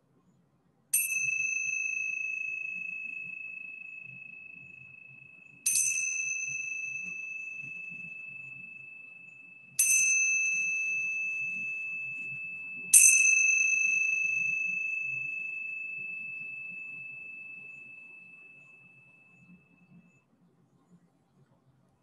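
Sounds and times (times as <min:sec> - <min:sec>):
high-pitched metal chime: 0:01.0 - 0:20.2.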